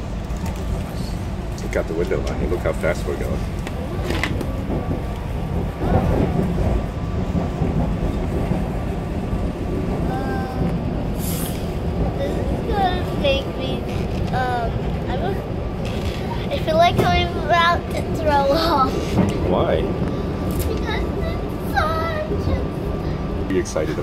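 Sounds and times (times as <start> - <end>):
train rumbling from inside: 0.0 - 24.0.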